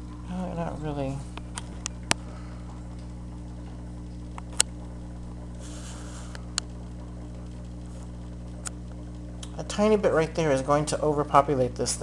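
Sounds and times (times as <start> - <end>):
steady low hum: 0.0 - 12.0
soft hiss: 4.1 - 9.7.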